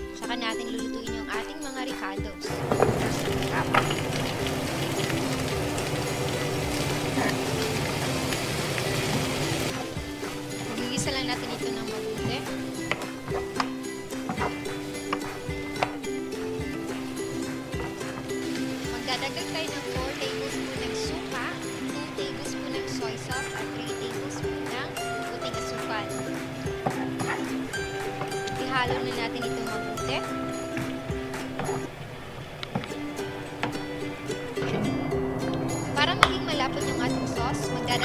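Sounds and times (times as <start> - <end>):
background music: 0.0 - 38.0
vegetables sizzling in oil: 2.5 - 34.6.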